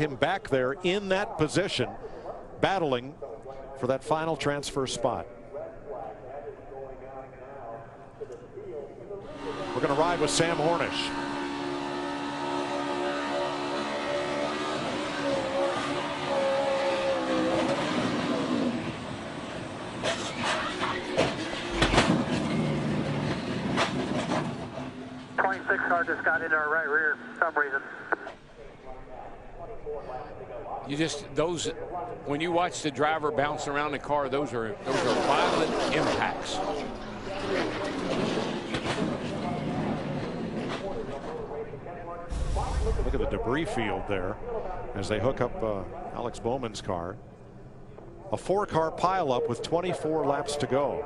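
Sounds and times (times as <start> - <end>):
race car engine at speed: 9.3 - 26.3, 34.8 - 41.5
sharp bang: 42.3 - 43.5.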